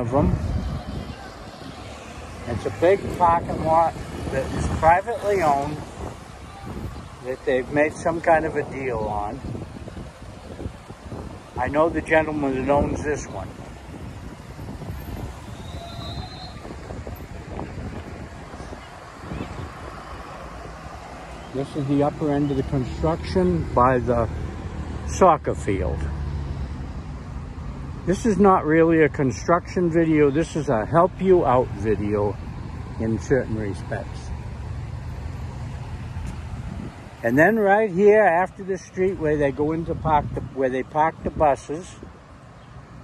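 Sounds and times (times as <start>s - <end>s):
wind buffeting microphone: 0.0s - 21.8s, 36.0s - 37.2s
street traffic rumble: 0.0s - 43.0s.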